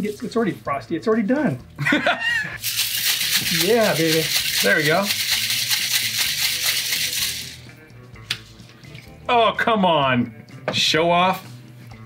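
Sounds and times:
ice rattling in cocktail shaker: 0:02.6 - 0:07.6.

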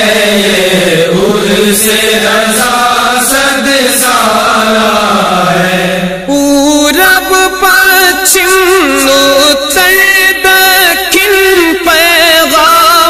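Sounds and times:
wordless vocal chanting: 0:00.0 - 0:13.0.

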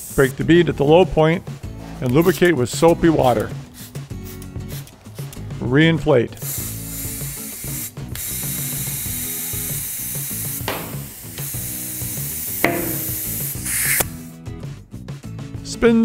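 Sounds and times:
compressed air hissing into tire: 0:00.0 - 0:00.2, 0:06.4 - 0:14.3
tire bead popping onto rim: 0:10.7 - 0:11.2, 0:12.6 - 0:13.6.

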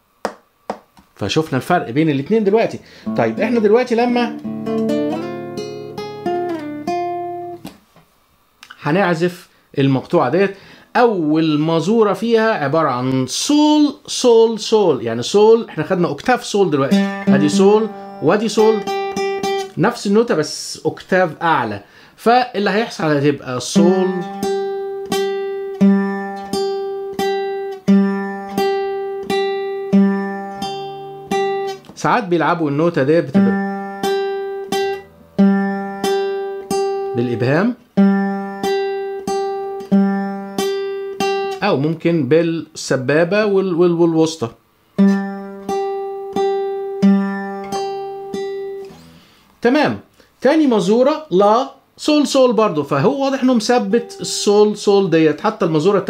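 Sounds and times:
classical guitar plucked notes: 0:03.0 - 0:07.8, 0:16.8 - 0:19.8, 0:23.8 - 0:32.0, 0:33.2 - 0:41.6, 0:45.0 - 0:49.2.

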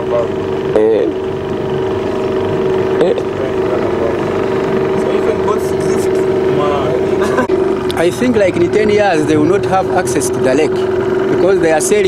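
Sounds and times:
outboard motor running: 0:00.0 - 0:12.0
voices: 0:00.0 - 0:12.0
water rushing: 0:00.0 - 0:12.0.

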